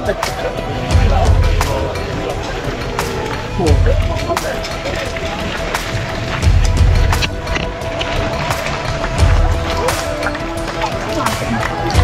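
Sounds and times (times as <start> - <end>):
crowd chatter: 0.0 - 12.0
music with long held note: 0.0 - 12.0
low thumps: 0.7 - 12.0.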